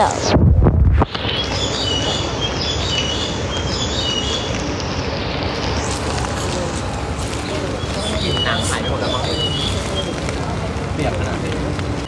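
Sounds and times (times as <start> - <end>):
rushing outdoor noise: 0.0 - 12.0.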